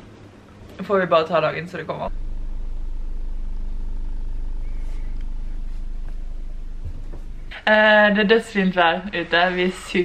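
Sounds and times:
low mechanical hum: 0:00.0 - 0:10.0.

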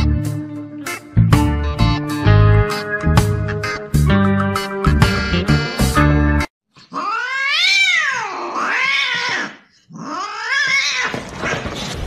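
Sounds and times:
guitar music: 0:00.0 - 0:06.5
cat yowling and meowing: 0:06.9 - 0:11.2.

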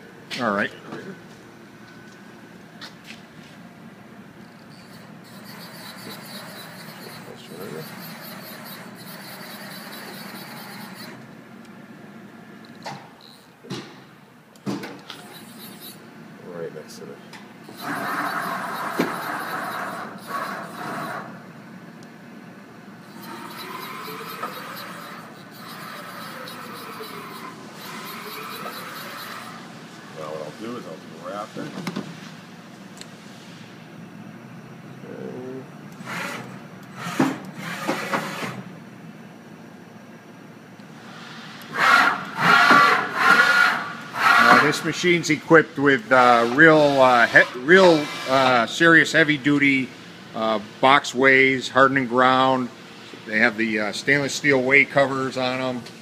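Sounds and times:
machine whine rising and falling: 0:04.4 - 0:11.2, 0:17.6 - 0:21.3, 0:23.0 - 0:31.4.

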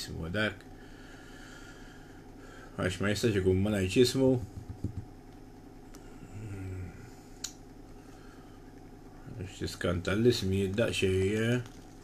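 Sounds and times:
man humming: 0:06.2 - 0:07.2.

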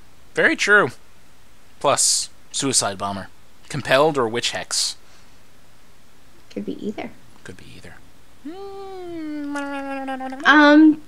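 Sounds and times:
woman speaking: 0:06.5 - 0:07.2, 0:08.5 - 0:11.0
woman humming mmm: 0:08.4 - 0:11.0.

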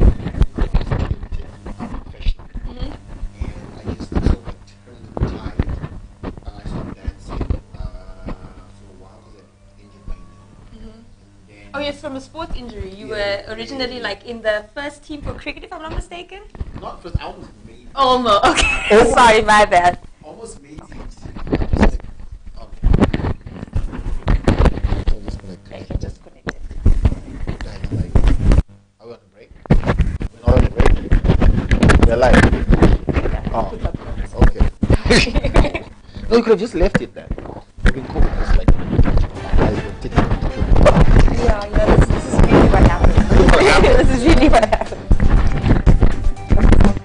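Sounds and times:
man talking: 0:00.0 - 0:02.4, 0:03.4 - 0:05.8, 0:06.4 - 0:10.4, 0:11.4 - 0:11.8, 0:16.8 - 0:18.0, 0:20.2 - 0:22.0, 0:25.0 - 0:26.2, 0:26.9 - 0:28.3, 0:30.3 - 0:31.0, 0:32.0 - 0:32.6, 0:33.5 - 0:35.3, 0:36.2 - 0:41.4, 0:43.1 - 0:44.3.

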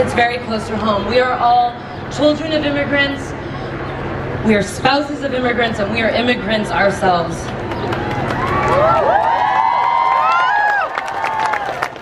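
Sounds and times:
crowd cheering and yelling: 0:07.8 - 0:12.0.

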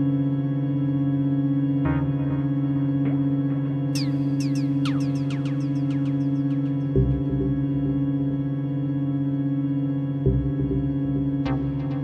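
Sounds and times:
ambient electronic drone: 0:00.0 - 0:12.0.

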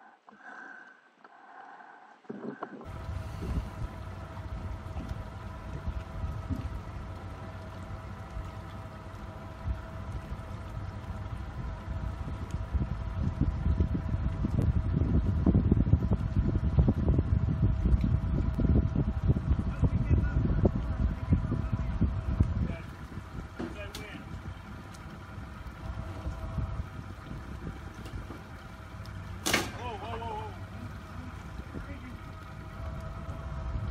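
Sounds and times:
steady mechanical hum: 0:02.2 - 0:33.9
wind buffeting microphone: 0:02.3 - 0:33.9.

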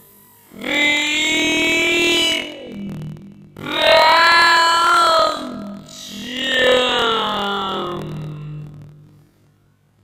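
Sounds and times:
boy singing long notes: 0:00.5 - 0:09.2.

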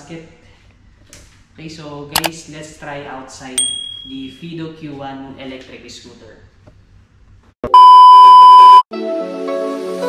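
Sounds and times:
high electronic beep: 0:07.6 - 0:08.8.

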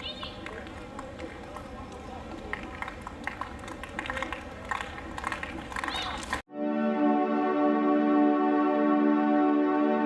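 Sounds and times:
murmur of distant voices: 0:00.0 - 0:06.4.

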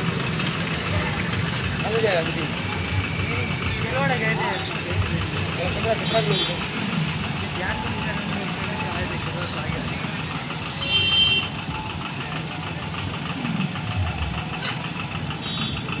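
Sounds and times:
motorcycle engines passing slowly: 0:00.0 - 0:16.0
voices: 0:00.0 - 0:16.0.

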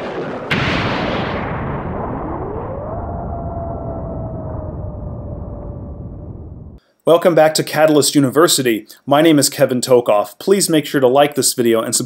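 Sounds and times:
boom hit with rumble: 0:00.0 - 0:06.8.

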